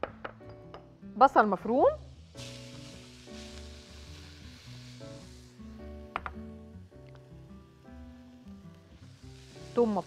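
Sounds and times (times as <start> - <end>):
onion sizzling in butter: 1.3 - 10.0.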